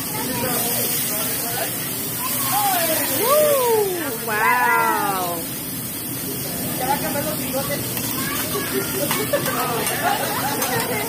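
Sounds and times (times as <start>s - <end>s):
griddle flame hissing: 0.0s - 11.0s
person exclaiming in delight: 2.7s - 5.4s.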